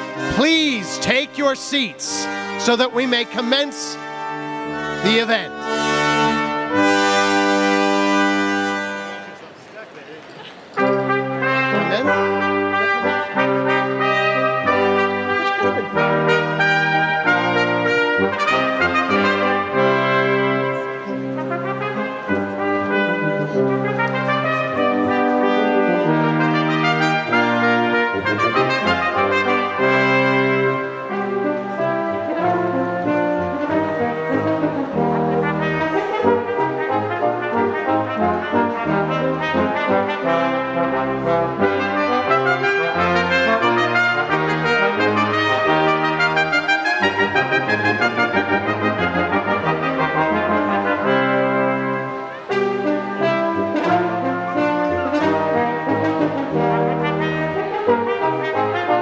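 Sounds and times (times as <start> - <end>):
brass ensemble playing chords: 0.0 - 9.6, 10.8 - 59.0.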